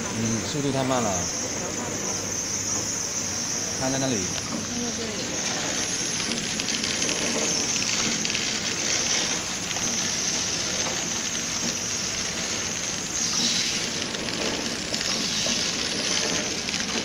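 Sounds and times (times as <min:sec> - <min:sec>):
packaging machine running: 0:00.0 - 0:17.0.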